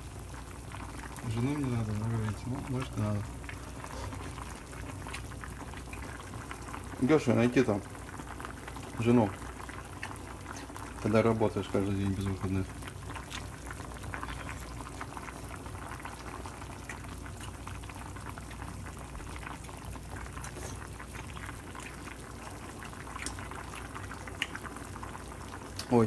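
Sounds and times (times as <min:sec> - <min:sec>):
water boiling in a pan: 0:00.0 - 0:26.0.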